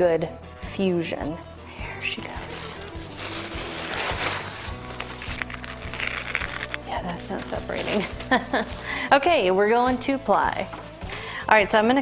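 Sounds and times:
background music: 0.0s - 12.0s
paper napkin rustling: 2.2s - 8.9s.

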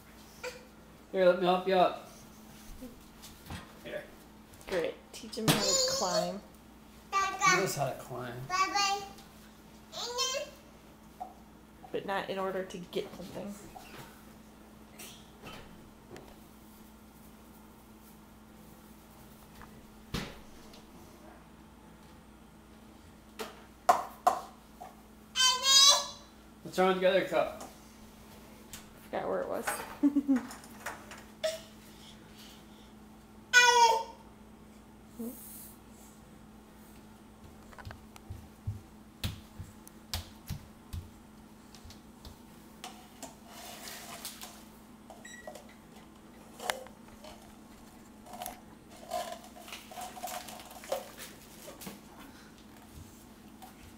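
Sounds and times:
toddler yelling: 5.5s - 6.4s, 10.0s - 10.6s, 25.4s - 26.3s, 33.5s - 34.2s
steady low hum: 26.3s - 53.9s.

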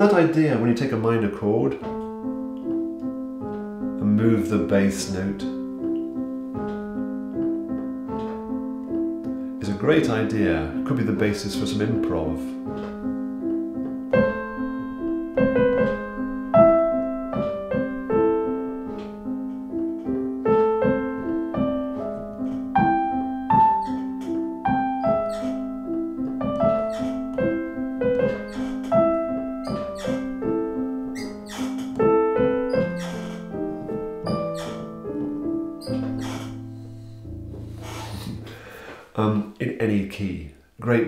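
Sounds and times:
piano broken-chord accompaniment: 0.0s - 39.3s.

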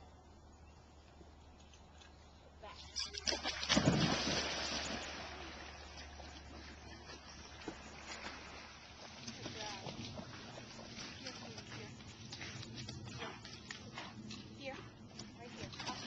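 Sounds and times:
dog splashing into water: 2.8s - 11.7s
swish of water: 3.0s - 6.8s.

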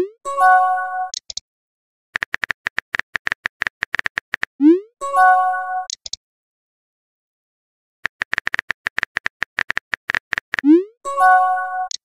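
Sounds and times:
keyboard tap clicks: 8.1s - 10.6s.

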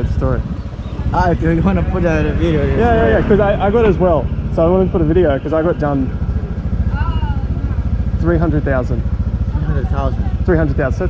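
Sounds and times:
scooter engine idling: 0.0s - 11.0s.

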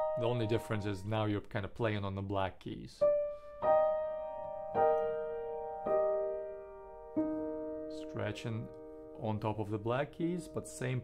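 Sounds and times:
piano chords ringing: 0.0s - 2.0s, 3.0s - 11.0s.

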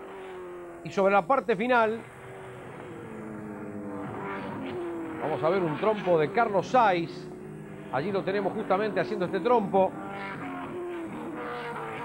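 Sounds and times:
racing car engine high revs: 1.7s - 12.0s.

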